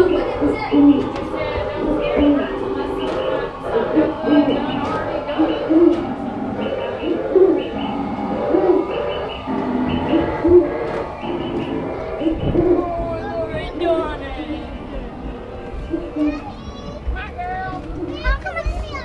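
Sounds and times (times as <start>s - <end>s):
bird calls: 0.0s - 13.3s.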